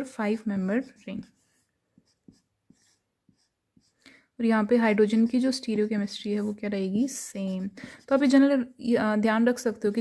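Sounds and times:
marker pen writing on whiteboard: 0:00.2 - 0:04.0, 0:05.0 - 0:08.5.

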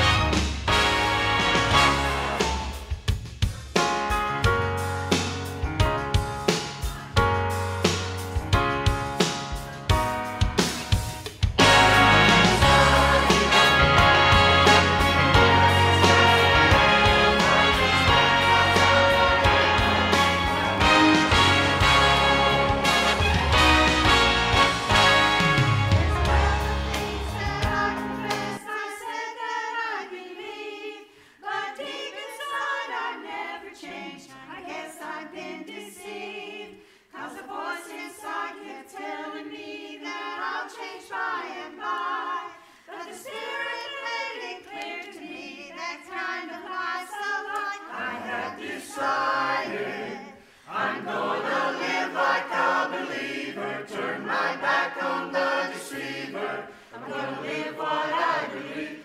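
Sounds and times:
church choir singing a hymn: 0:11.6 - 0:24.6, 0:26.0 - 0:59.0.

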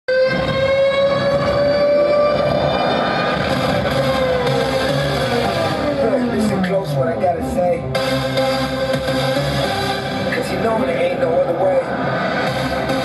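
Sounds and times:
loud horn-like synth tone: 0:00.1 - 0:06.6.

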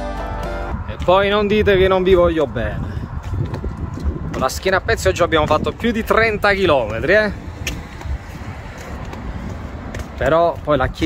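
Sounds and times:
street noise: 0:00.0 - 0:11.0
wind rumbling on microphone: 0:00.6 - 0:11.0.

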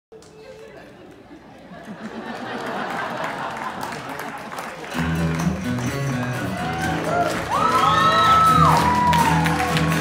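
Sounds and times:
audience chatter: 0:00.1 - 0:10.0.

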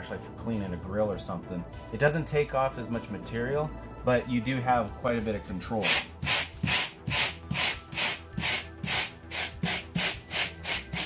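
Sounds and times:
wire brush scratching foam: 0:05.8 - 0:11.0.

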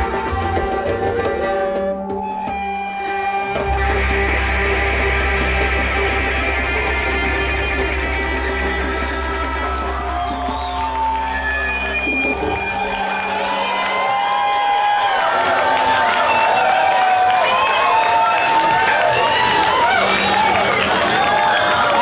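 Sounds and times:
bass guitar: 0:00.0 - 0:13.9
fiddle: 0:00.0 - 0:14.1
audience cheering and whooping: 0:00.0 - 0:22.0.

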